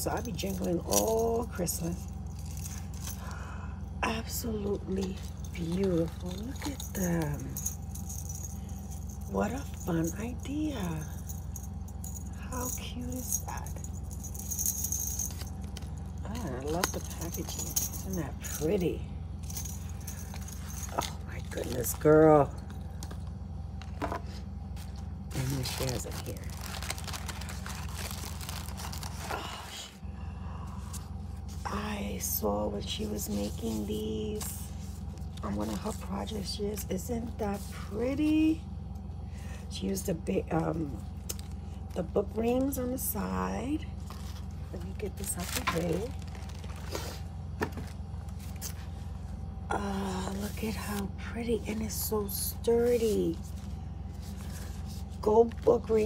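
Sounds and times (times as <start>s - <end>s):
small jingle bells jingling: 0.0s - 3.4s, 4.7s - 23.0s
low hum: 0.0s - 56.0s
knocks and rustles of handling: 19.4s - 29.6s, 44.0s - 49.3s.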